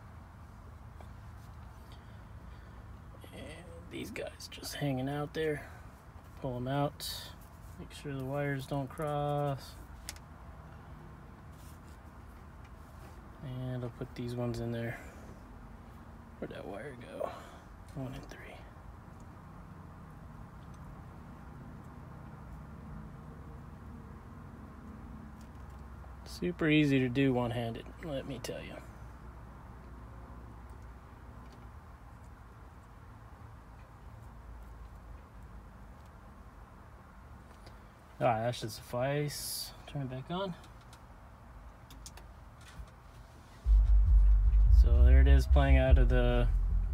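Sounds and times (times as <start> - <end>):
low steady hum: 43.6 - 46.9.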